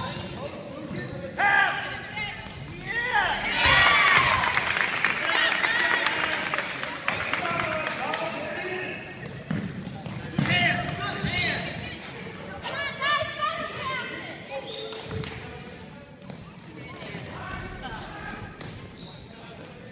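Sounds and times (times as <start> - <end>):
sneakers squeaking: 0.0 - 4.4, 8.3 - 19.9
people shouting: 2.9 - 4.6.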